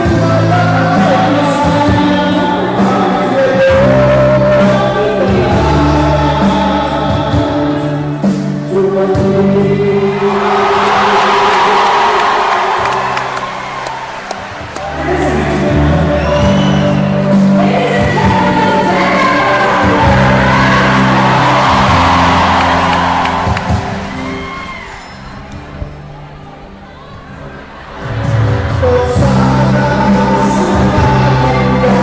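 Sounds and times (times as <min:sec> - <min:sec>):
singing through a pa: 0:00.0 - 0:11.8, 0:14.8 - 0:22.4, 0:28.7 - 0:32.0
amplified backing music: 0:00.0 - 0:32.0
crowd cheering and screaming: 0:09.9 - 0:32.0.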